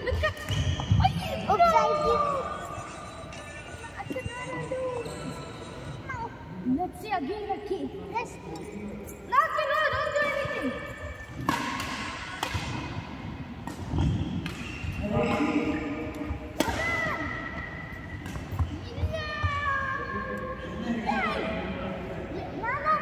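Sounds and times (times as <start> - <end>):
voices in a hall: 0.0 - 23.0
racket hitting shuttlecock: 11.2 - 15.0, 16.0 - 18.8.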